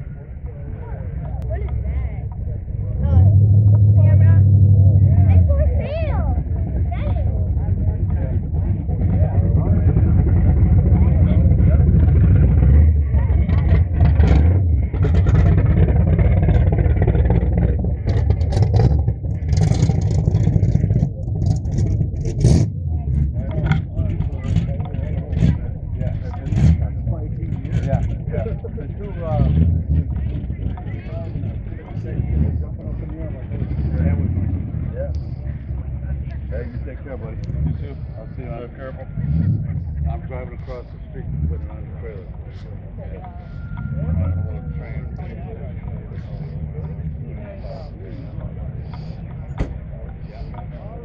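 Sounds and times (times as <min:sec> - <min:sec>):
car engines rumbling: 0:00.0 - 0:51.0.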